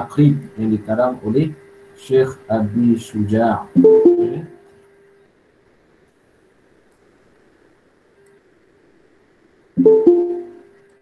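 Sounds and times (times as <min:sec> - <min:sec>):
faint low hiss: 0:00.0 - 0:11.0
two-note notification chime: 0:09.8 - 0:10.6.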